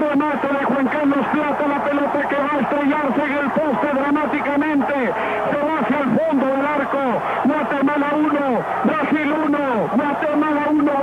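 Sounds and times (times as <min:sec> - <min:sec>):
man commentating fast: 0:00.0 - 0:11.0.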